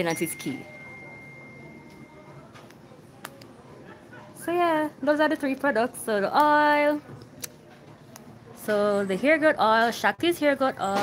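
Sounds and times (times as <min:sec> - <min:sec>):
faint high-pitched tone: 0:00.0 - 0:02.6
low background noise: 0:00.0 - 0:11.0.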